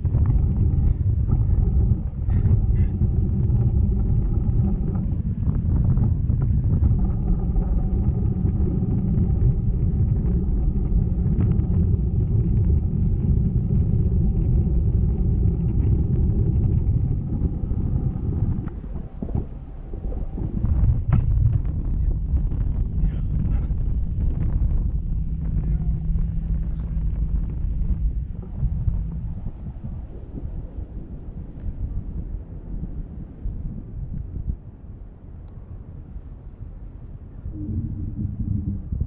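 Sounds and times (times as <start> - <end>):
faint steady hums: 0.0 - 39.0
wind buffeting microphone: 0.0 - 39.0.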